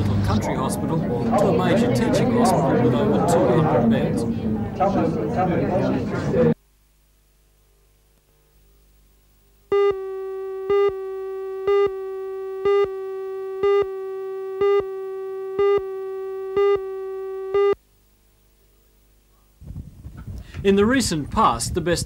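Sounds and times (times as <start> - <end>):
steady tone: 9.7 - 17.8.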